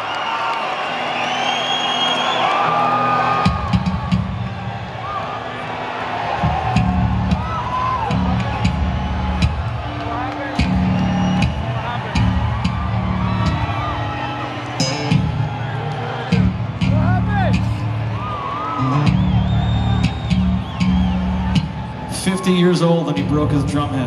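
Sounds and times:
crowd whooping and whistling: 0.0 - 22.9
rock band playing live: 3.4 - 4.6, 6.4 - 22.2
low bass and guitar riff: 6.6 - 15.6, 16.2 - 22.2.

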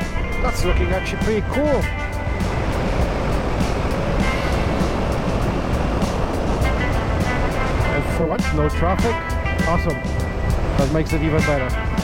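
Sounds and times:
background music with steady beat: 0.0 - 12.0
motorcycle road rumble: 0.0 - 12.0
wind rushing: 1.4 - 10.9.

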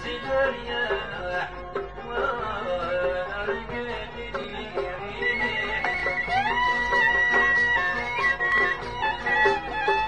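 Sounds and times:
plucked string notes: 0.0 - 10.0.

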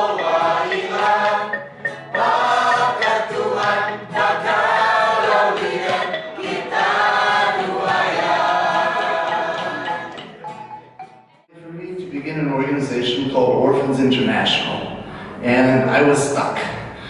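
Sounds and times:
group singing in unison: 0.0 - 10.8.

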